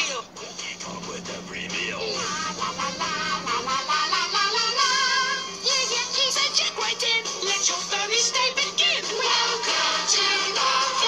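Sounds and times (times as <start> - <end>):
puppet characters singing with band: 0.0 - 11.0
low hum: 0.3 - 6.2.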